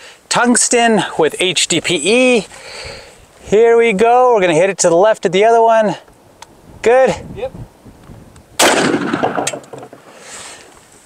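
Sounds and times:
sharp crack: 0:08.5 - 0:10.0
shotgun shot echoing: 0:08.6 - 0:09.8.

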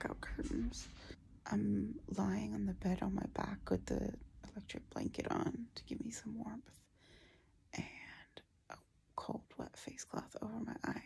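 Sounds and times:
woman whispering: 0:00.0 - 0:06.7, 0:07.8 - 0:08.4, 0:09.2 - 0:11.0.

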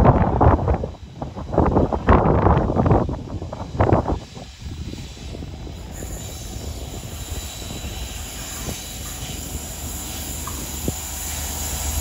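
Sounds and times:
diesel locomotive rumbling: 0:00.0 - 0:12.0
high hiss: 0:00.4 - 0:12.0.

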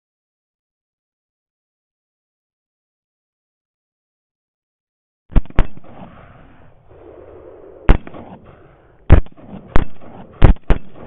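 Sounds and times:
rifle shots with echo: 0:05.3 - 0:11.0.

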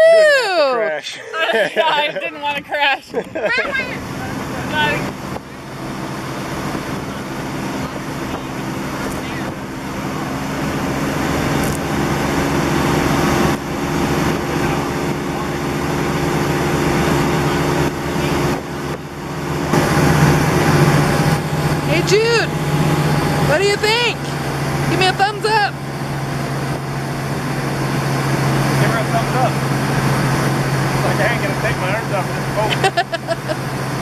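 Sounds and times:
motorboat engine drone: 0:00.0 - 0:34.0
water rushing: 0:00.0 - 0:34.0
wind: 0:00.0 - 0:34.0.

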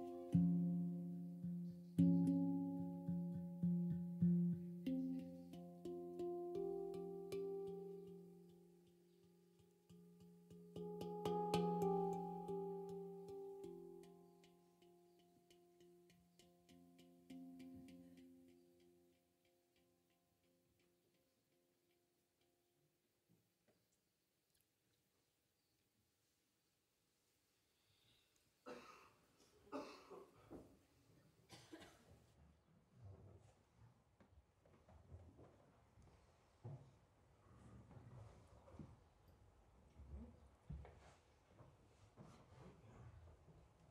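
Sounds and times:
handpan notes ringing: 0:00.0 - 0:19.2.

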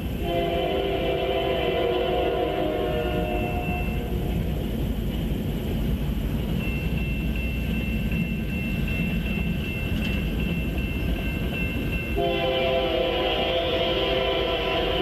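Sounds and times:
diesel train rumble: 0:00.0 - 0:15.0
train horn blast: 0:00.2 - 0:04.4, 0:12.2 - 0:15.0.

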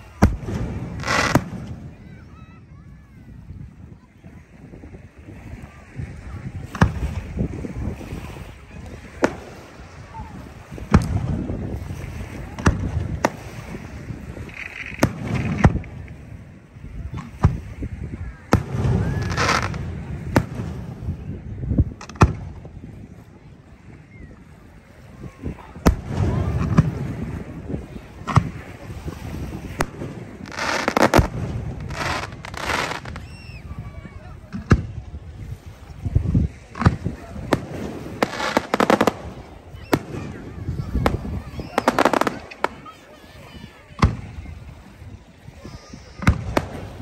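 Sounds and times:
fireworks bangs: 0:00.0 - 0:02.6, 0:06.6 - 0:16.4, 0:17.1 - 0:22.8, 0:25.2 - 0:33.7, 0:36.7 - 0:44.8, 0:46.1 - 0:47.0.

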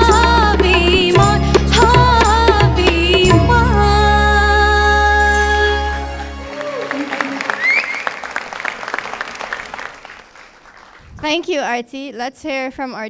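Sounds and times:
audience applause: 0:06.4 - 0:11.1.

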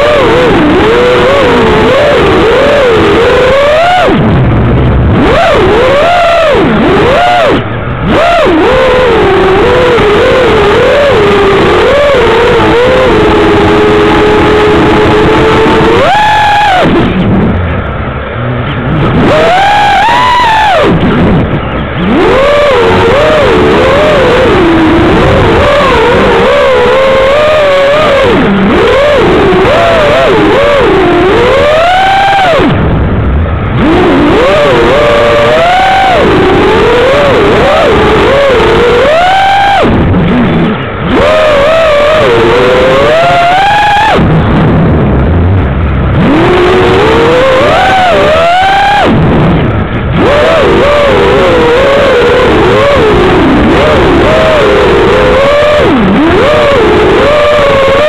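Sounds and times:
drone motors whining: 0:00.0 - 0:58.0
wind noise: 0:00.0 - 0:58.0.

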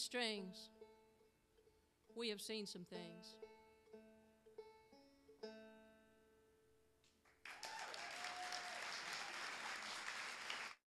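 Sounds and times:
audience applauding: 0:07.3 - 0:10.8
person cheering: 0:07.5 - 0:09.8.

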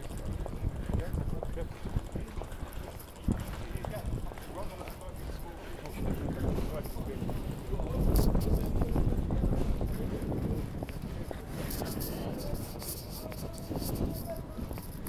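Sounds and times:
street ambience: 0:00.0 - 0:15.0
wind buffeting microphone: 0:00.0 - 0:15.0.

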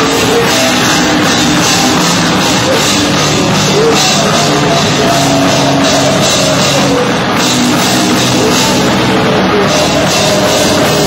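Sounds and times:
cymbal crashes: 0:00.0 - 0:11.0
live rock band playing: 0:00.0 - 0:11.0.

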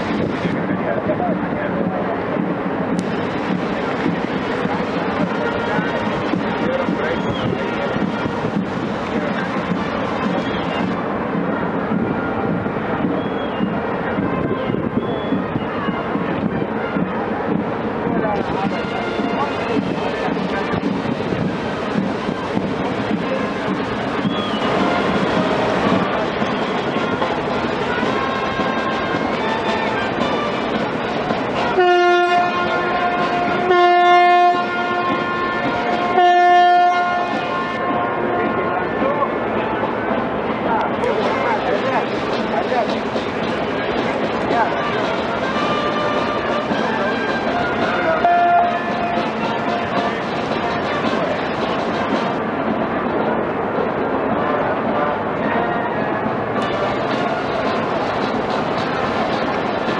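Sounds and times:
crowd chatter: 0:00.0 - 0:59.9
ship's horn blasts: 0:31.6 - 0:38.9, 0:44.7 - 0:49.8.

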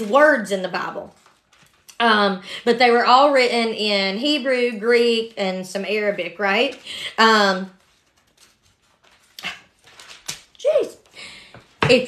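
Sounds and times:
pages being turned: 0:00.0 - 0:02.0, 0:06.2 - 0:11.8.

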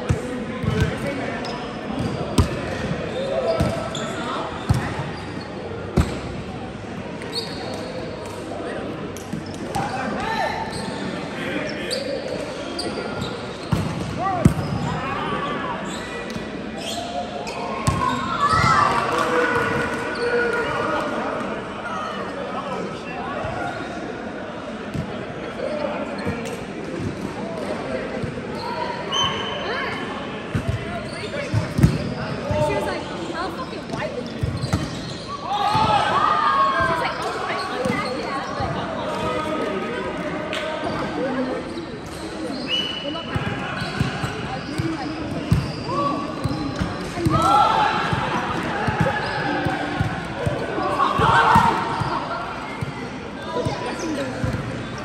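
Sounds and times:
players calling and chatting: 0:27.8 - 0:55.0.

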